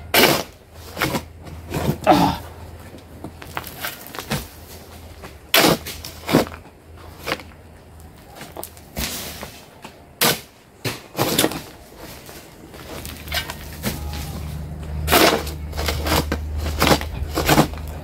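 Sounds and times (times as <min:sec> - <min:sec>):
digging tool striking gravel: 0:00.0 - 0:02.4, 0:03.4 - 0:07.5, 0:08.4 - 0:18.0
low steady hum: 0:00.0 - 0:18.0.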